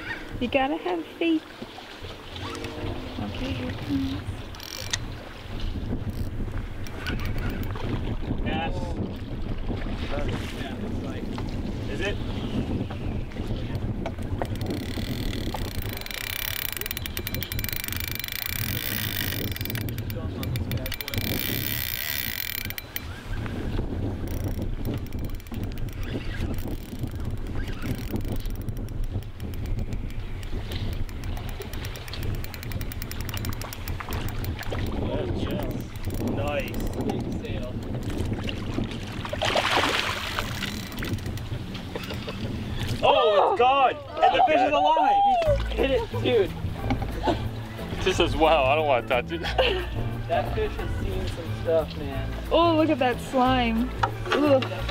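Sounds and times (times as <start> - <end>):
wind rumbling on microphone: 0.0 - 54.9.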